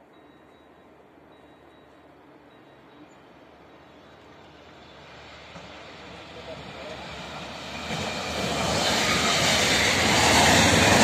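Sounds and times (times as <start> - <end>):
train rumble: 0.0 - 11.0.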